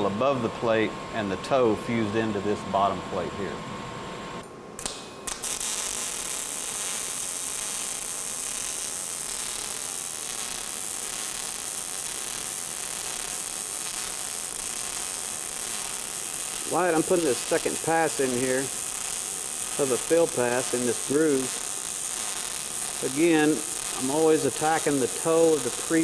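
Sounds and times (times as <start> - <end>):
welding arc pops: 4.4 - 26.0
welding arc running: 4.8 - 26.0.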